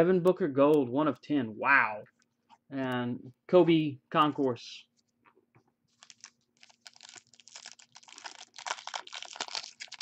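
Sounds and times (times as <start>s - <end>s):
foil pack tearing and crinkling: 6.0s - 10.0s.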